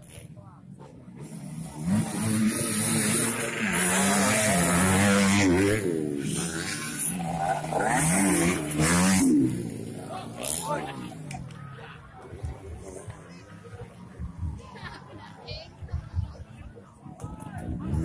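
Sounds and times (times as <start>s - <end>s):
dirt bike engine revving: 1.2s - 11.2s.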